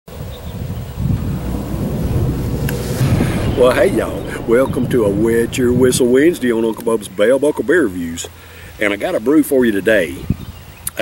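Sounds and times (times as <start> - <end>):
wind buffeting microphone: 0.2 - 8.5, 10.0 - 10.7.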